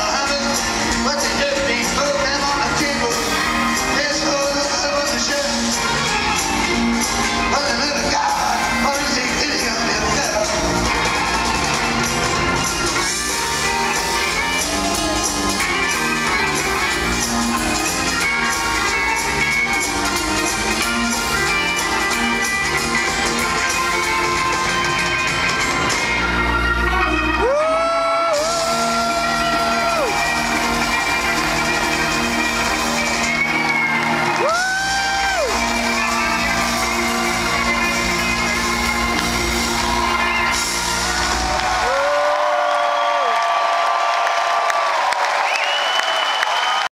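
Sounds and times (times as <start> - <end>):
live electric band playing: 0.0 - 43.6
crowd whooping and cheering: 0.0 - 46.9.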